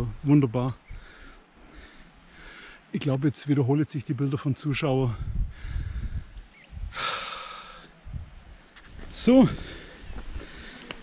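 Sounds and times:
man breathing out: 5.3s - 8.0s.

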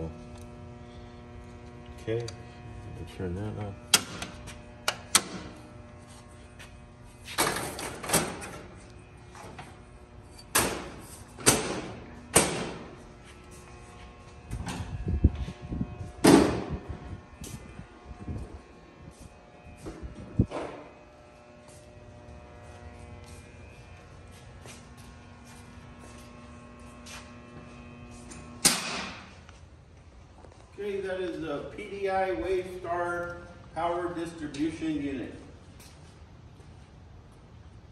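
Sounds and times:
low electrical hum: 0.0s - 37.9s.

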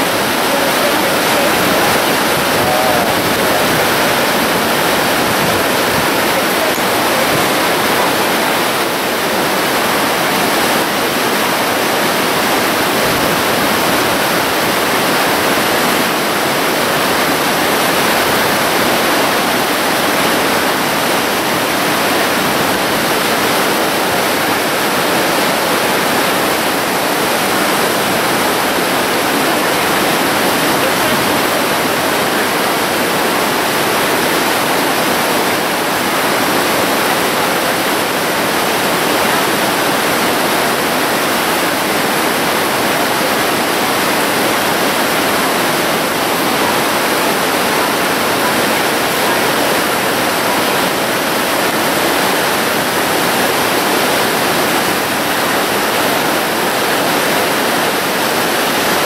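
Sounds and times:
whitewater rapids rushing: 0.0s - 59.0s.

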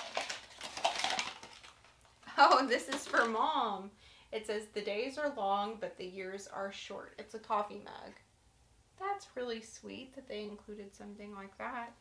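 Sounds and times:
packing paper crinkling: 0.0s - 3.5s.

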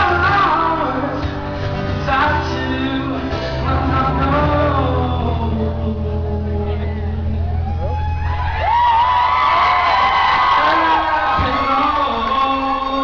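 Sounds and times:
crowd cheering and whooping: 6.5s - 13.0s.

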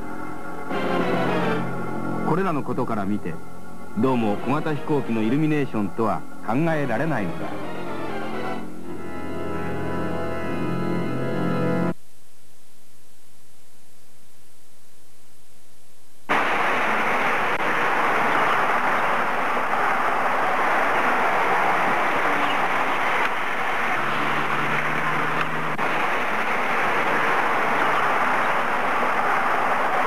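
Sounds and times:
steady rushing noise: 16.3s - 30.0s.

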